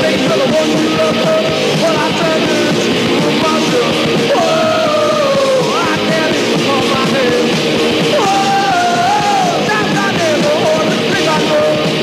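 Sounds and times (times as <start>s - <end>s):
rock song with singing: 0.0s - 12.0s.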